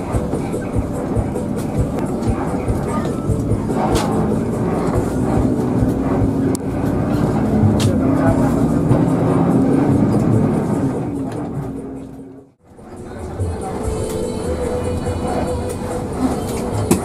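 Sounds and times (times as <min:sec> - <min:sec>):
bus diesel engine running: 0:00.0 - 0:17.0
road rumble: 0:00.0 - 0:17.0.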